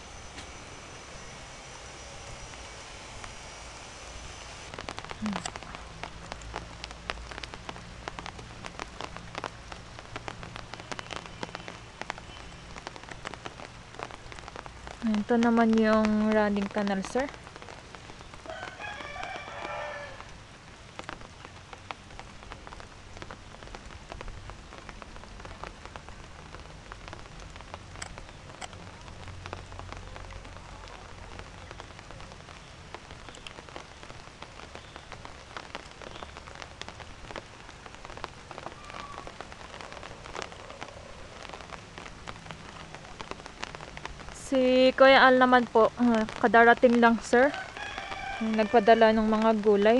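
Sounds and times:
rain falling steadily: 0.0s - 49.9s
raindrop ticks: 4.7s - 49.9s.

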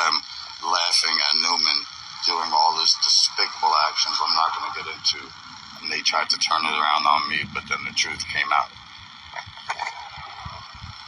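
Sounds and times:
wind noise on microphone: 9.5s - 11.0s.

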